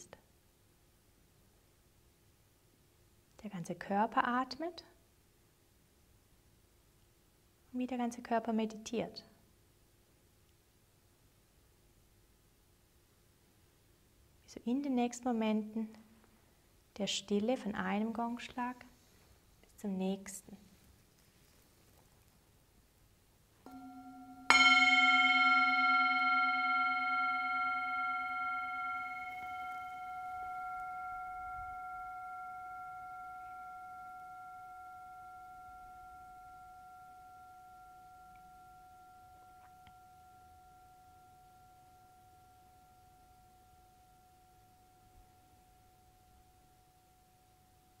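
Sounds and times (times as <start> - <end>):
singing bowl ringing: 23.7 - 48.0.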